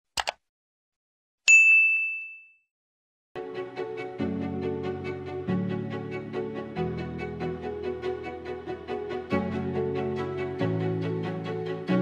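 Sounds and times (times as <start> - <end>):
notification bell ding: 1.5 - 2.6.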